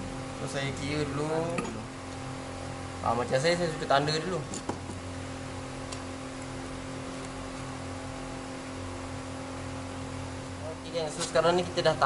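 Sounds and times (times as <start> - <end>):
motor or fan humming: 0.0 - 12.0.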